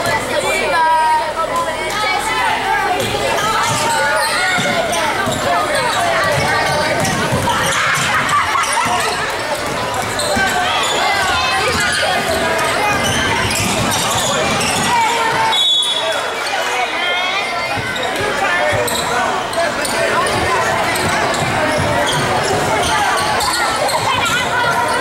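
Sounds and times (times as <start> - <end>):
spectators talking: 0.0 - 25.0.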